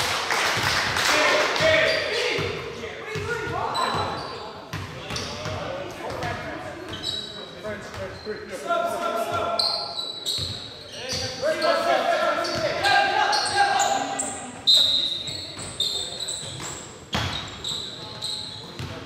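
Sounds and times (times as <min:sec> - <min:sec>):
players' indistinct calls: 0:00.8 - 0:19.0.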